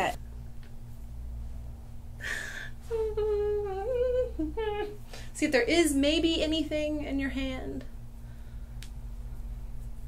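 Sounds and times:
woman humming: 2.2 - 5.0.

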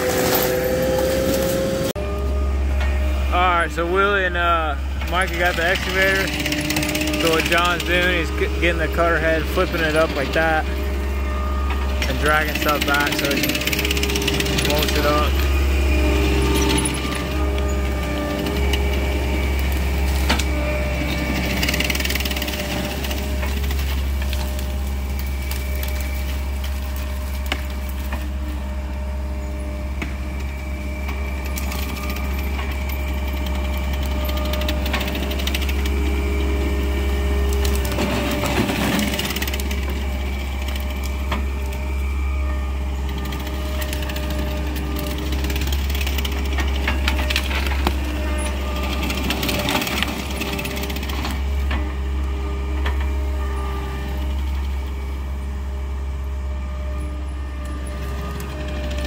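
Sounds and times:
wood and brush cracking: 0.0 - 1.9, 5.1 - 55.2
diesel engine running hard: 0.0 - 59.0.

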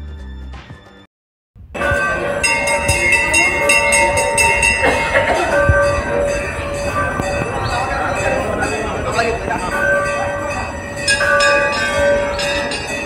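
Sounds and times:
temple bells ringing: 1.7 - 13.0.

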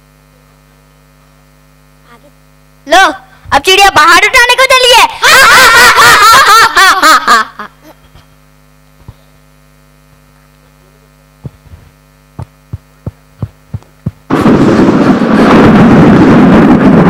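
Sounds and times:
mains hum from amplifier: 0.0 - 17.0.

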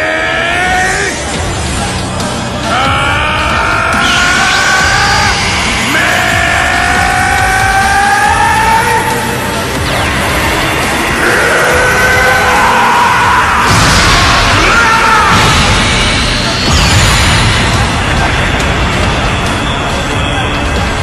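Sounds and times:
tense dramatic music: 0.0 - 21.0
man yelling: 2.7 - 9.3, 11.2 - 15.6.

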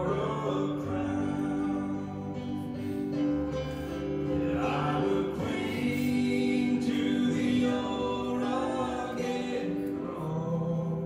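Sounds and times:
gospel singing: 0.0 - 11.0.

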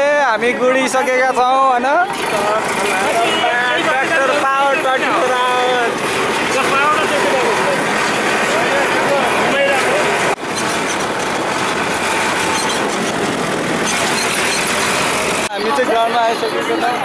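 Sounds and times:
people talking: 0.0 - 10.4, 15.4 - 17.0
tractor diesel engine running: 1.1 - 15.8.

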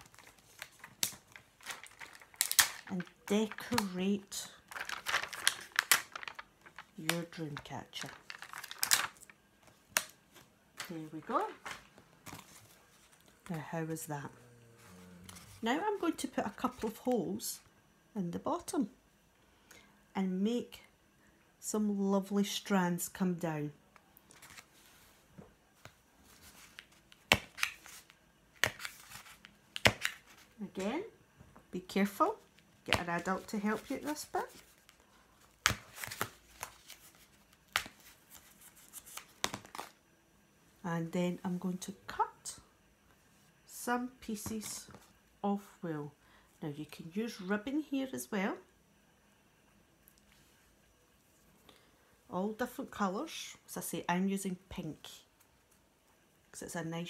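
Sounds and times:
paper rustling: 0.0 - 4.0, 4.7 - 13.4, 24.3 - 25.2, 35.6 - 39.9.

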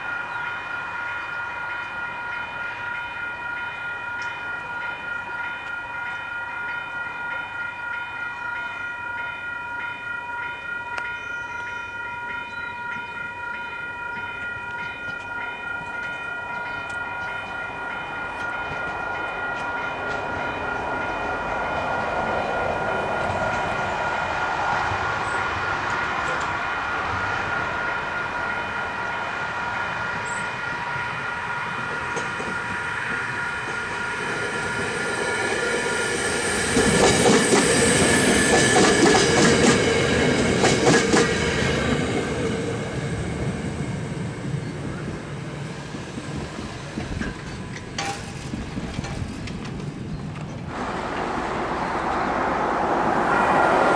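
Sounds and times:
level-crossing bells ringing: 0.0 - 24.2, 27.4 - 42.7
train passing: 0.0 - 53.9
train wheels clattering on rail joints: 14.2 - 24.2, 30.2 - 42.8, 46.2 - 52.4.

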